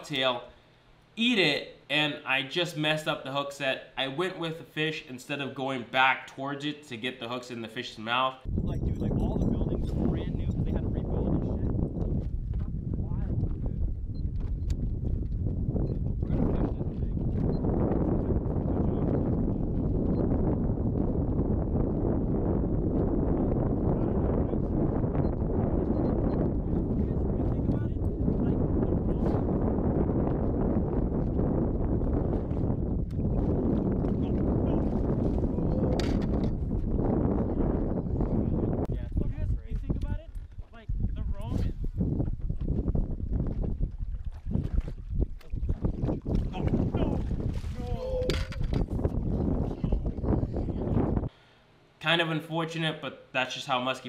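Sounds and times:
choppy water: 8.4s - 51.3s
wind noise on microphone: 8.4s - 51.4s.

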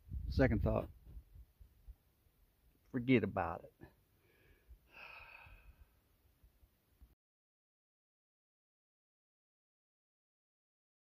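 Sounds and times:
man sighing breathily: 4.2s - 6.0s.

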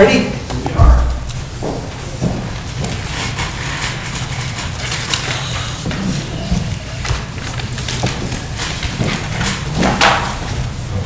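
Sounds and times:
papers and chairs rustling: 0.4s - 11.0s
low thump: 0.8s - 1.3s.

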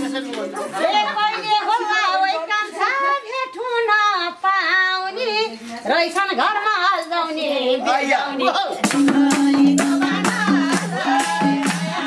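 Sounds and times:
woman singing folk song: 0.8s - 7.8s.

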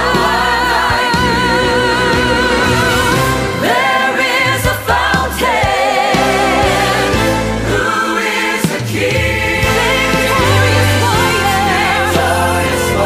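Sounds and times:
choir singing: 0.0s - 13.0s
orchestral accompaniment: 0.1s - 13.0s.

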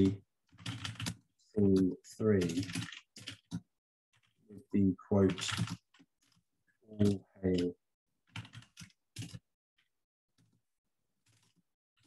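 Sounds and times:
typing on computer keyboard: 0.0s - 4.4s, 5.2s - 7.7s, 8.3s - 9.4s.

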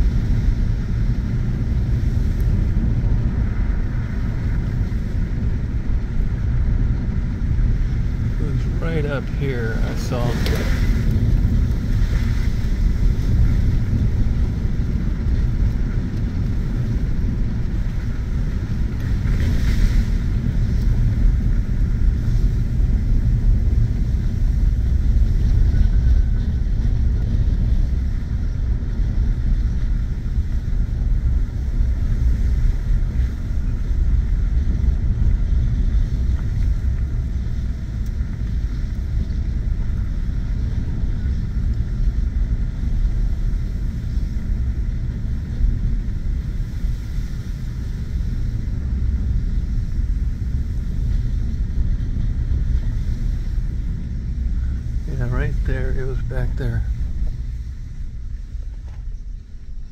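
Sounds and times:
engine and tyre rumble: 0.0s - 59.9s.

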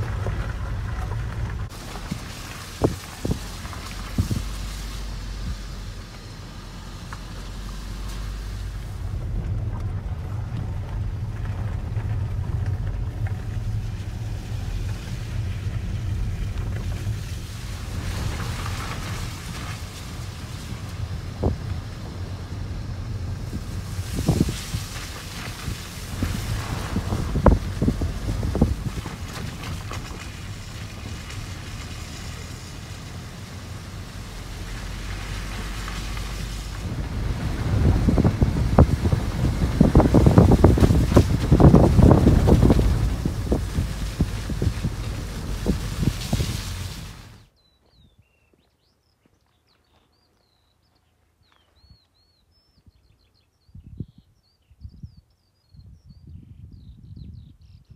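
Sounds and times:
wind buffeting microphone: 0.0s - 47.4s, 52.8s - 57.9s.

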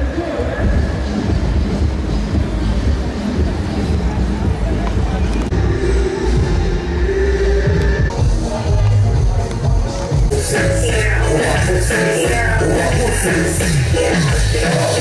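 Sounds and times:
indistinct voices: 0.0s - 15.0s
music: 0.0s - 15.0s.

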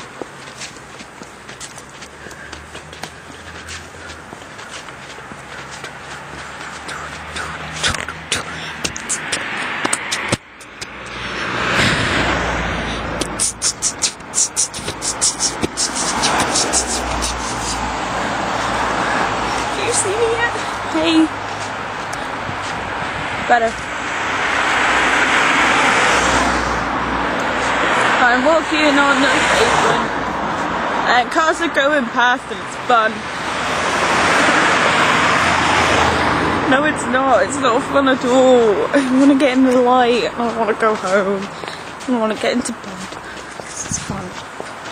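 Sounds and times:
car passing: 0.0s - 44.9s.

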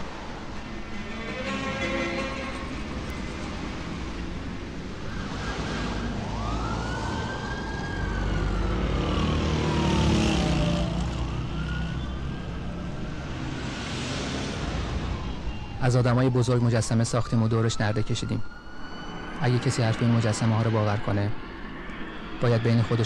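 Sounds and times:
cars passing: 0.0s - 15.8s
siren wailing: 5.0s - 23.0s.

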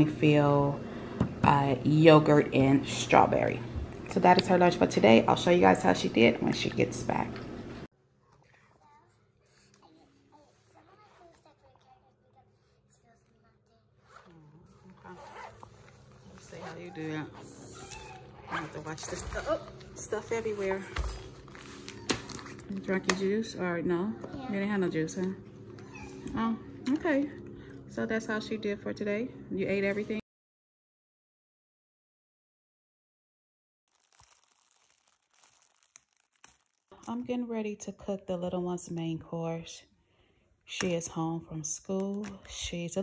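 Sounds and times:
zipper pulled open: 14.0s - 19.6s
plastic packet crinkling: 33.9s - 37.2s.

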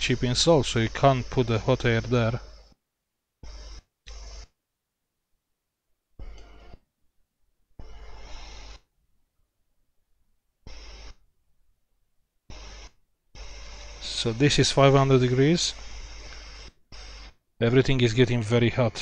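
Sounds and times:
hot air blower hissing: 0.0s - 2.4s, 13.4s - 16.6s.

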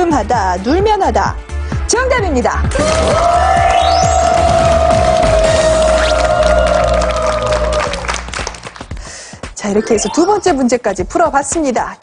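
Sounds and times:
game show jingle: 9.6s - 11.2s.

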